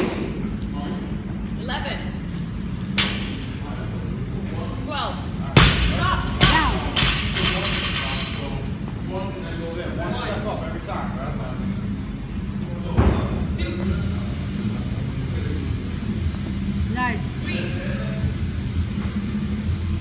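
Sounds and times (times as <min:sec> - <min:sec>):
low gym hum: 0:00.0 - 0:20.0.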